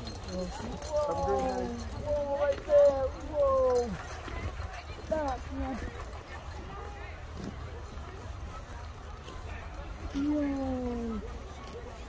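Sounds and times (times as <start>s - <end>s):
faint voices of people: 0.0s - 12.0s.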